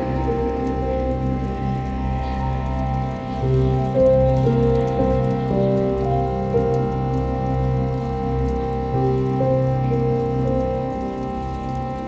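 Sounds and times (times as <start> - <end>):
calm instrumental music: 0.0 - 12.0
rain patter: 0.0 - 12.0.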